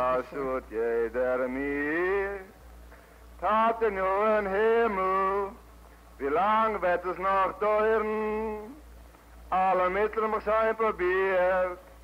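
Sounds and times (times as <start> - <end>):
person singing slow song: 0.0 - 2.6, 3.4 - 8.9, 9.5 - 12.0.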